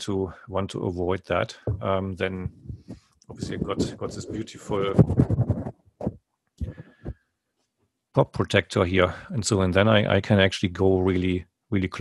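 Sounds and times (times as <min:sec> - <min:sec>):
microphone handling thumps and rubs: 0:01.5 - 0:07.2.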